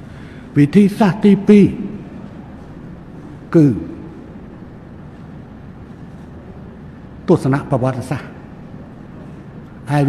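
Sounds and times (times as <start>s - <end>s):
low hum: 1.2s - 7.3s.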